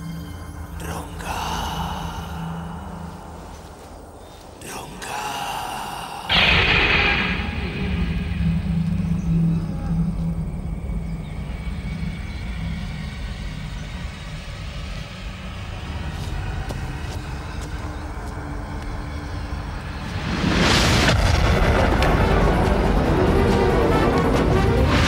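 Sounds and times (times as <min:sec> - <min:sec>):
low rumbling drone: 0:05.1 - 0:25.0
low hum: 0:05.4 - 0:25.0.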